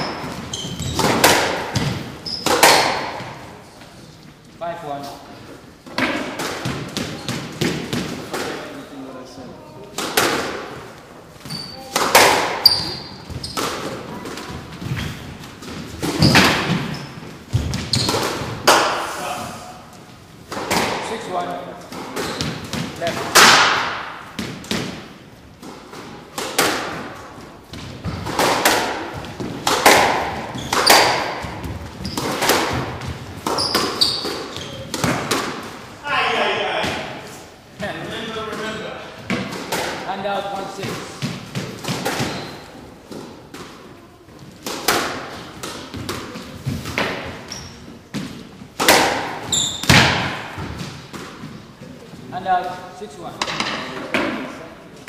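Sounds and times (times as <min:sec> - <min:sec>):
sneaker squeaks on wooden floor: 0:00.0 - 0:03.4, 0:06.9 - 0:07.6, 0:11.4 - 0:11.9, 0:12.6 - 0:18.5, 0:22.1 - 0:22.8, 0:30.3 - 0:35.2, 0:42.2 - 0:42.8, 0:47.3 - 0:48.1, 0:49.4 - 0:51.9
squash ball hits echoing: 0:00.0 - 0:03.6, 0:05.9 - 0:08.8, 0:09.9 - 0:19.2, 0:20.5 - 0:35.9, 0:36.6 - 0:44.0, 0:44.6 - 0:52.0.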